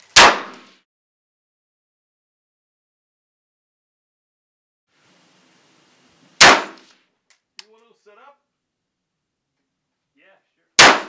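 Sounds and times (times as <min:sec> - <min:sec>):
rifle shots: 0:00.1 - 0:00.8, 0:06.4 - 0:07.0, 0:10.8 - 0:11.0.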